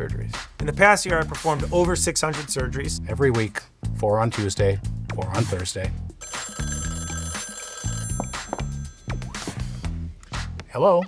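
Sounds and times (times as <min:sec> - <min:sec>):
telephone bell ringing: 0:06.2 - 0:09.8
music with repeating bass line: 0:07.9 - 0:10.7.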